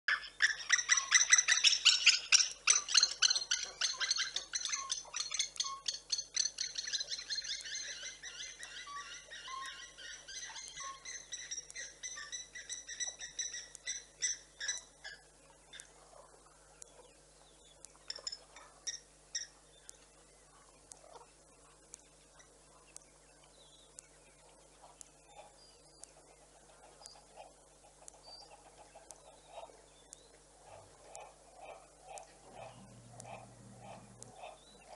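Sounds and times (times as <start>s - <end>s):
birds chattering calls: 0.1s - 34.9s.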